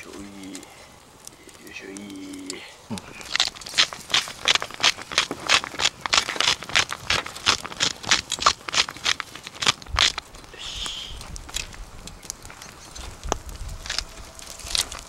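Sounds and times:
person humming mm: 10.5 - 11.2.

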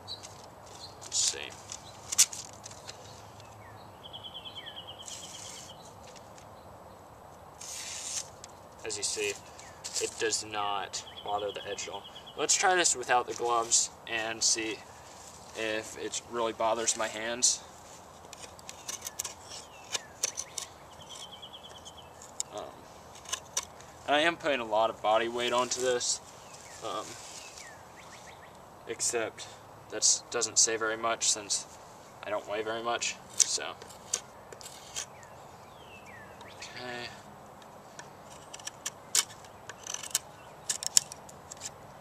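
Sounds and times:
bird trilling: 2.9 - 6.0, 18.8 - 24.0
knife slicing paper: 7.6 - 8.4.

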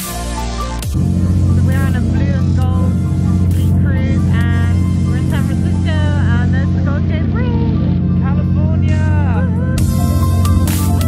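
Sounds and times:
boat engines droning: 0.4 - 11.0.

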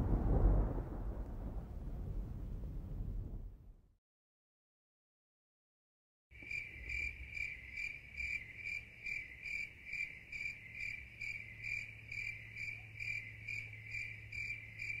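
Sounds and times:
cricket chirping: 6.4 - 15.0.

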